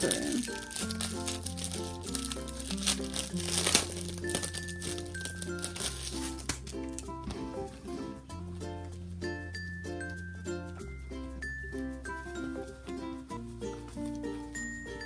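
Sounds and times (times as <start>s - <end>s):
plastic packaging crinkling: 0.0s - 7.1s
plucked melody background music: 0.0s - 15.0s.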